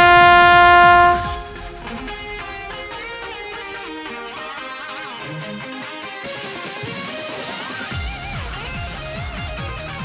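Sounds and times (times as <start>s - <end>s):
trombone holding a note: 0.0s - 3.4s
rock backing track with guitar: 0.0s - 10.0s.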